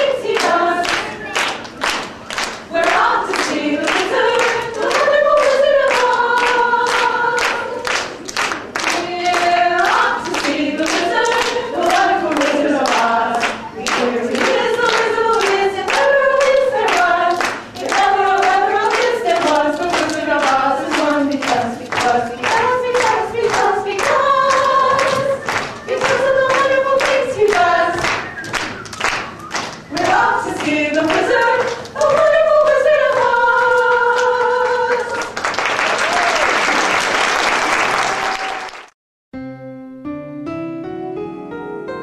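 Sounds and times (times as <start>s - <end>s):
group of people singing: 0.0s - 1.4s, 2.7s - 8.2s, 8.8s - 28.6s, 29.9s - 35.4s
people clapping in time: 0.0s - 39.0s.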